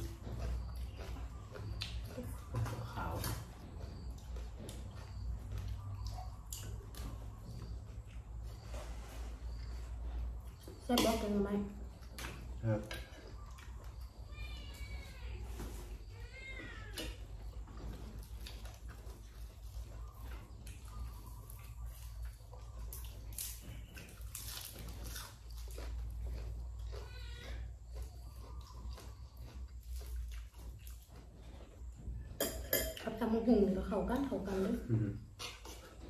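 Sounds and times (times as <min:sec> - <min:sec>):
eating clicks and chewing: 0:00.0 - 0:08.7, 0:09.5 - 0:15.0, 0:16.4 - 0:32.4
cat meowing: 0:14.3 - 0:15.6, 0:16.2 - 0:17.2, 0:27.0 - 0:27.6.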